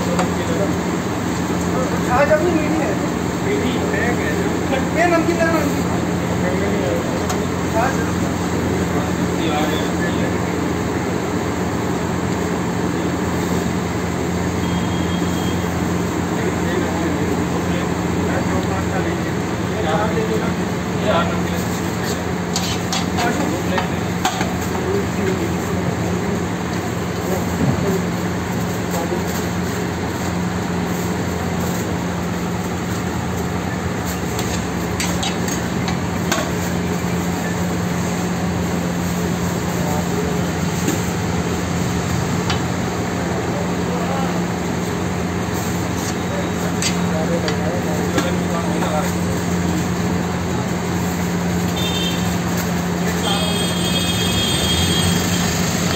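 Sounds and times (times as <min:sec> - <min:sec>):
food sizzling on a griddle: 0:10.7 - 0:16.9, 0:21.3 - 0:43.2, 0:44.5 - 0:55.9
metal spatula scraping griddle: 0:21.6 - 0:23.4, 0:34.0 - 0:36.7.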